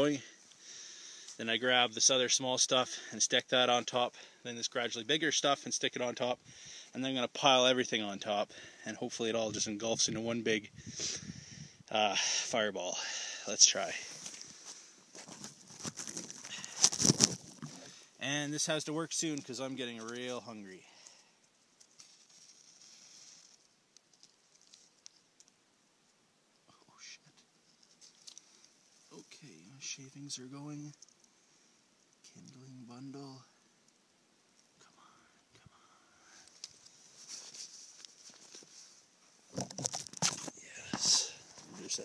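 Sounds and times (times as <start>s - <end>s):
dry twigs crackling and rustling: 14.2s - 18.0s, 18.6s - 25.6s, 27.8s - 29.1s, 36.3s - 42.0s.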